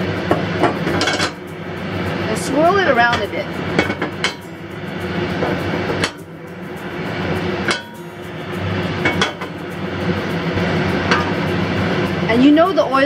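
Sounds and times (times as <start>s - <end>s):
background hum and hiss: 0.0s - 13.0s
skillet knocking on metal grate: 0.3s - 1.5s, 3.1s - 4.6s, 9.0s - 9.7s, 11.1s - 11.5s.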